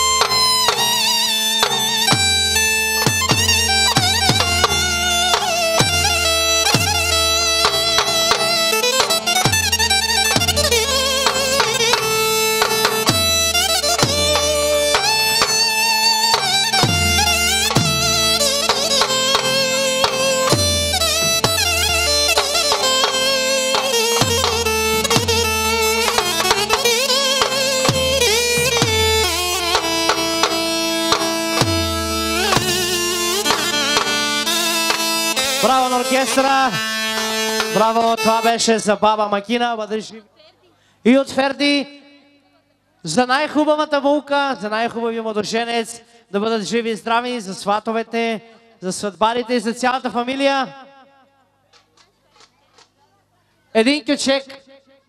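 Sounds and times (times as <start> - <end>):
regular drum hits: 0.0 - 36.4
band playing dance music: 0.0 - 38.7
ornamented lead melody: 0.0 - 38.7.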